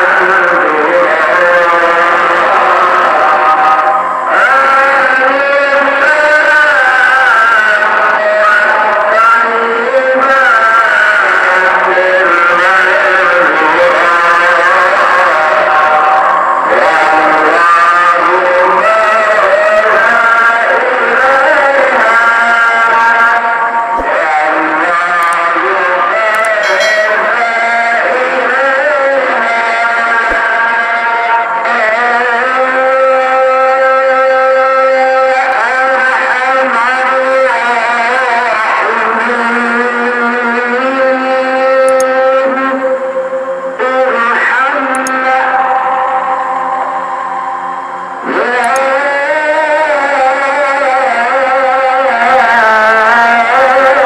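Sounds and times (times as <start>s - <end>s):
solo voice chanting: 0.0s - 31.1s.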